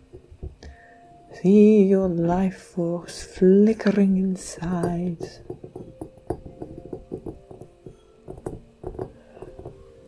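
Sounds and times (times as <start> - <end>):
soft background music: 0.0 - 10.0
fingernails tapping on glass ball: 3.8 - 10.0.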